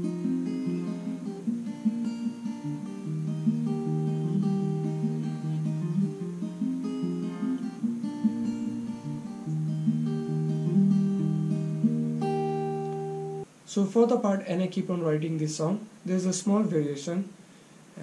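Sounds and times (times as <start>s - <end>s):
acoustic guitar fingerpicking: 0.0s - 13.5s.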